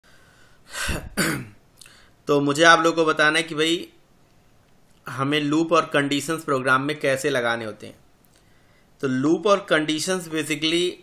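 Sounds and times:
man clearing his throat: 0.7s - 1.6s.

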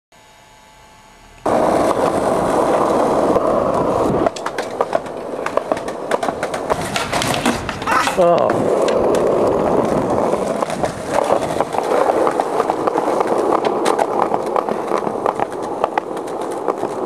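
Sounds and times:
faint hum: 0.2s - 7.1s
skateboard wheels rolling on concrete: 1.4s - 17.0s
skateboard clacks and knocks: 1.5s - 17.0s.

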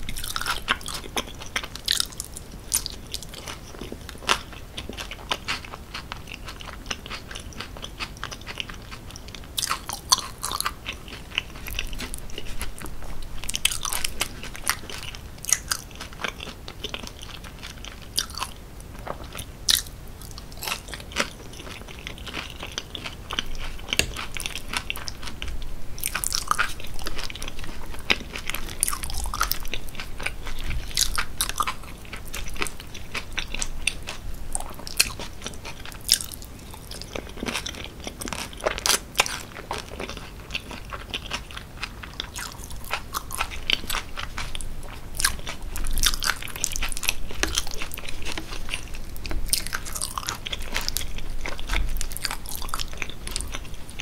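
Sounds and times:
close chewing of fries: 0.0s - 54.0s.

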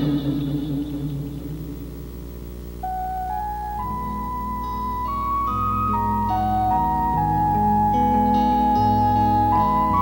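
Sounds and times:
soft instrumental accompaniment: 0.0s - 2.0s, 2.8s - 10.0s
flute melody: 2.8s - 10.0s.

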